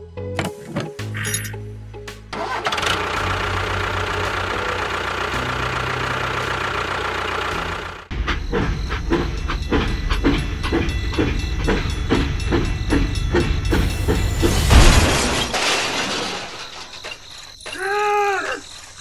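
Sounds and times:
background music: 0:00.0 - 0:06.6
tractor engine running: 0:02.3 - 0:14.6.

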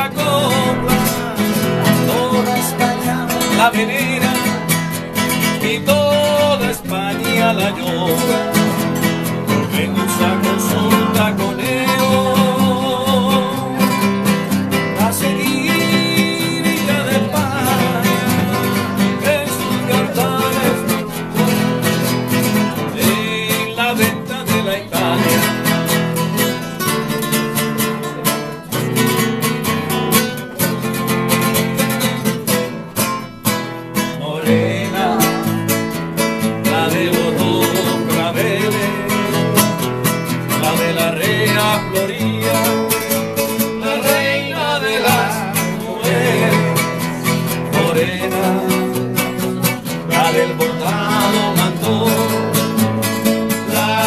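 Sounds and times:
solo classical guitar: 0:00.0 - 0:54.0.

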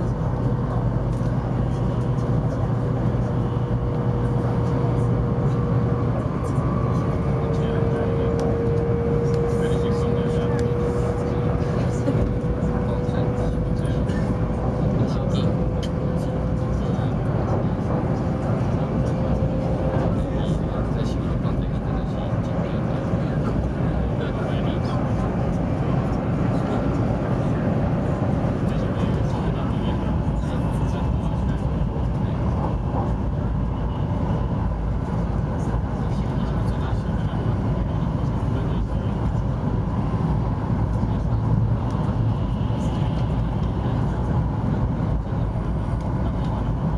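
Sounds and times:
train cabin rumble and rushing: 0:00.0 - 0:46.9.

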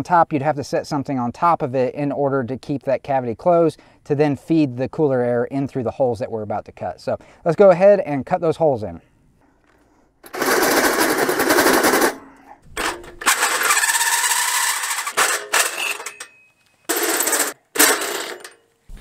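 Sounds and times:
drill hole saw grinding metal: 0:13.1 - 0:16.3.

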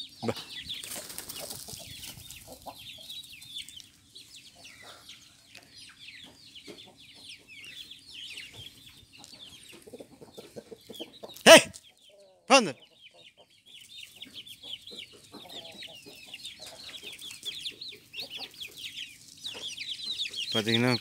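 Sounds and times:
chickens clucking: 0:00.0 - 0:21.0
chicks peeping: 0:00.0 - 0:21.0.

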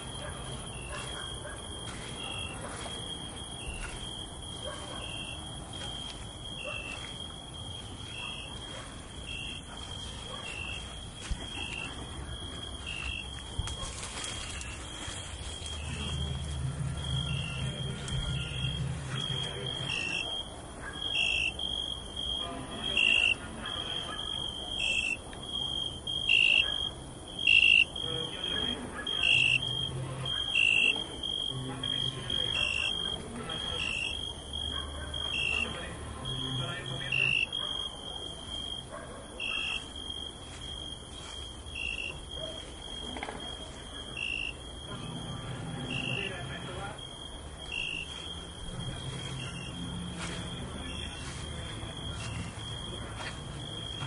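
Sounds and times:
crickets chirping: 0:00.0 - 0:54.0.

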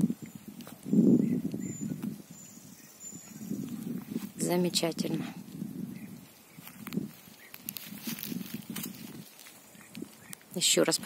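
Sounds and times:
footsteps on grassy forest floor: 0:00.5 - 0:10.5
light rustling: 0:06.6 - 0:10.5.

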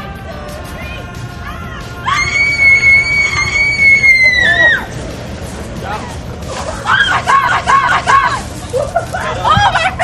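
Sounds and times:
woman screaming: 0:02.0 - 0:04.9, 0:06.8 - 0:08.4.

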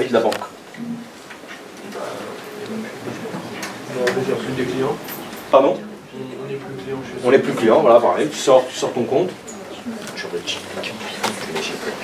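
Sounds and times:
students talking in distance: 0:01.8 - 0:12.0.

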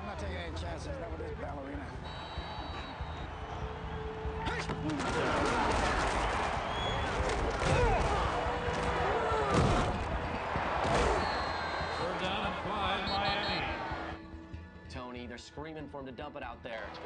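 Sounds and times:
stadium crowd din: 0:00.0 - 0:14.5
players shouting: 0:02.0 - 0:14.2.

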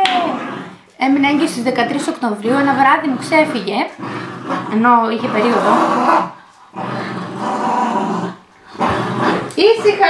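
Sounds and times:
dog growling: 0:00.0 - 0:10.0.

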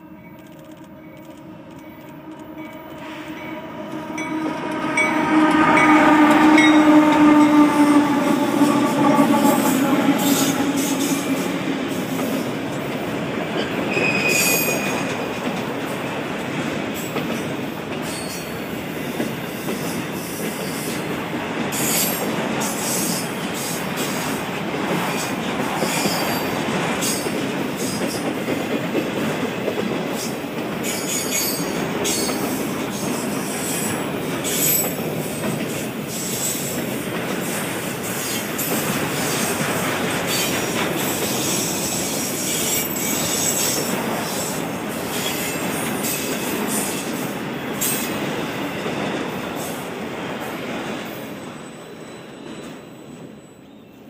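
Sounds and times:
train wheels rumbling on rail: 0:00.0 - 0:53.4
high-pitched wheel squeals: 0:01.5 - 0:12.5, 0:13.8 - 0:15.1.

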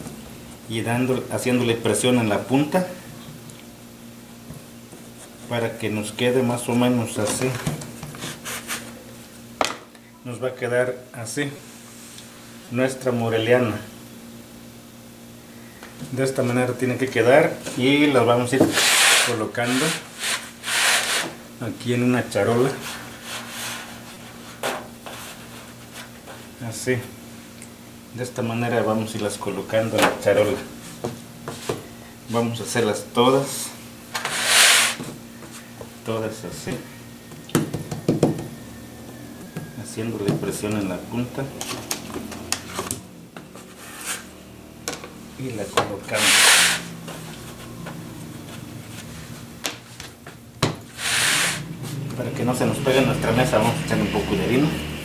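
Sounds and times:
hands rubbing dough on wood: 0:22.7 - 0:26.4
dough tapped on worktable: 0:37.5 - 0:38.5
knock on tabletop: 0:37.6 - 0:38.5.

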